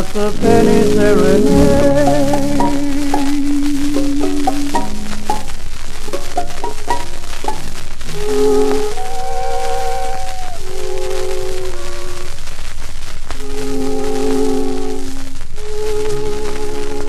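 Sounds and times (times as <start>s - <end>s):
record surface crackle and hiss: 0.0s - 17.0s
dance orchestra playing: 0.4s - 7.8s.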